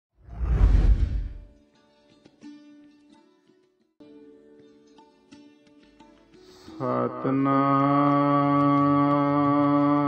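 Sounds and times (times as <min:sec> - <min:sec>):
whoosh with deep low rumble: 0:00.2 - 0:01.4.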